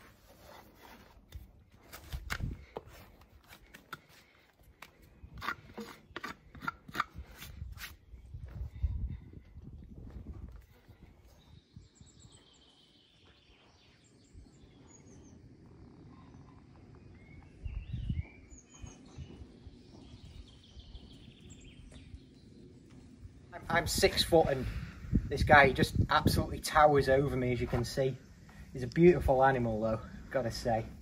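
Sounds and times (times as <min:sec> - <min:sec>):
hoof knife scraping hoof: 0:00.0 - 0:08.1
small birds chirping: 0:04.0 - 0:31.0.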